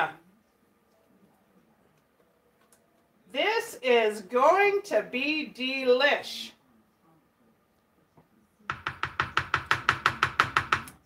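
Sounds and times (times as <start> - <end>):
spatula tapping metal baking pan: 8.7 - 11.0.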